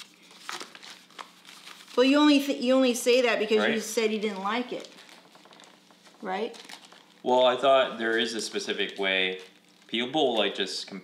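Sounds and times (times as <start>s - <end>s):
paper crinkling: 0.0s - 2.5s, 3.6s - 10.7s.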